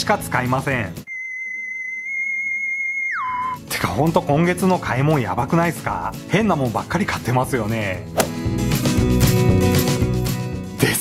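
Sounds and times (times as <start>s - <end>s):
high whistle-like tone: 1.1s - 3.6s.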